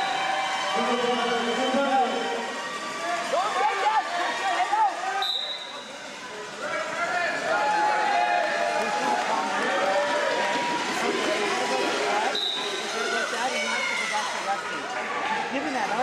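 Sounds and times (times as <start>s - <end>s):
crowd voices in a hall: 0.0s - 16.0s
referee whistle blast: 5.2s - 5.9s, 12.3s - 12.9s.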